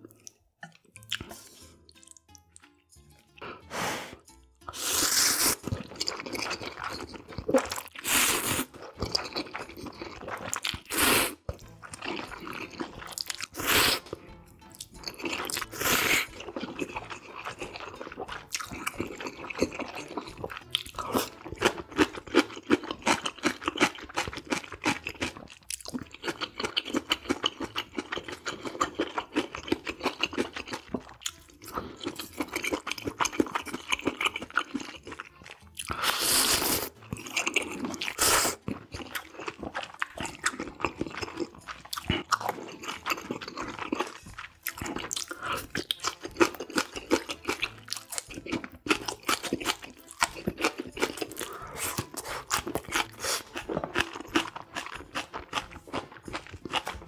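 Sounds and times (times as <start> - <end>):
wet chewing of noodles: 0.0 - 57.0.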